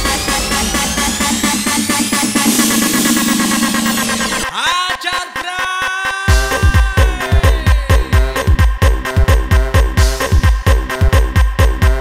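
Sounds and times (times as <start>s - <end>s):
rising synth sweep: 0.0s - 4.5s
electronic breakbeat music: 0.0s - 12.0s
pitch-bending synth tones: 0.2s - 8.3s.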